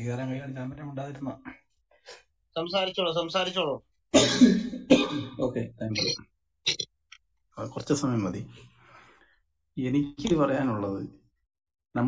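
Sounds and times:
man coughing: 4.2s - 5.5s.

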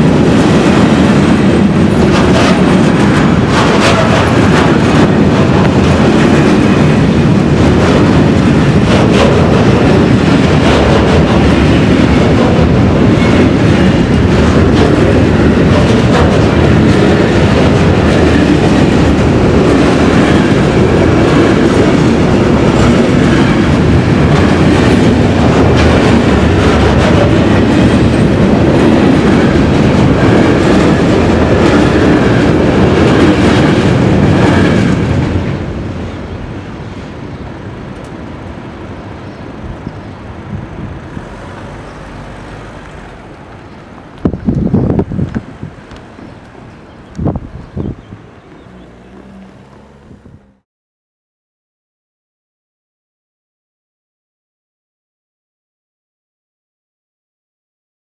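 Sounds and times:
freight train rumbling past: 0.0s - 50.6s.

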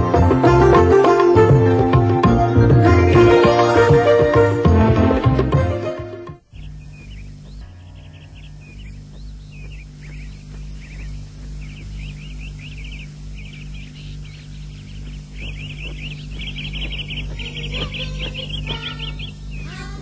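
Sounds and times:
steady low hum: 6.4s - 20.0s
cartoon bird chirping: 6.6s - 20.0s.

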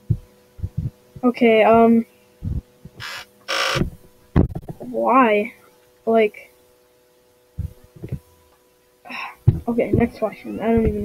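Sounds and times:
soft low thump: 0.0s - 3.0s, 7.6s - 8.2s, 9.4s - 10.1s.

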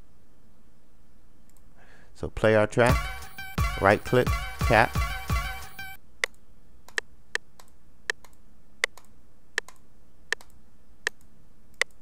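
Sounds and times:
computer mouse clicks: 6.2s - 12.0s.

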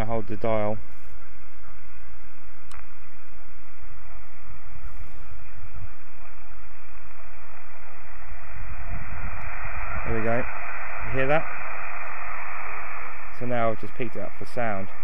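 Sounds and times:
radio static hiss: 0.0s - 15.0s.

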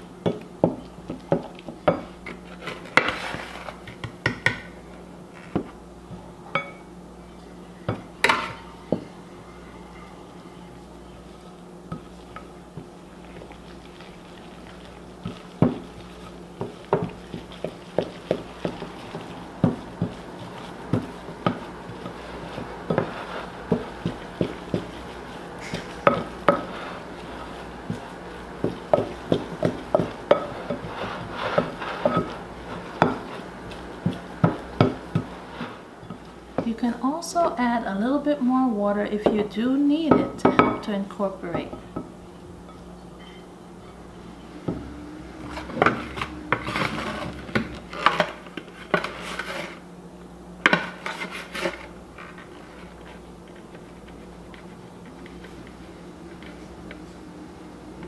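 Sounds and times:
low steady hum: 0.0s - 58.0s.

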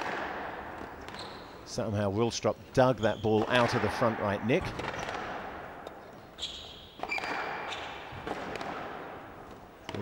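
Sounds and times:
shoes squeaking on court: 0.8s - 1.7s, 2.8s - 3.8s, 5.8s - 8.7s
squash ball knocks: 3.4s - 5.6s, 7.0s - 10.0s.

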